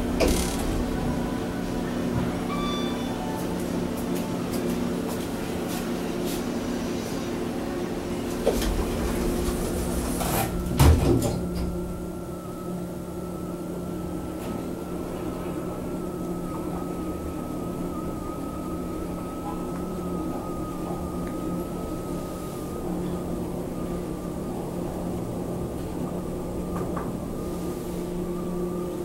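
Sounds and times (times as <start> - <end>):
elevator doors thumping shut: 0.0 - 1.2
elevator drive whine: 0.0 - 5.1, 6.7 - 29.0.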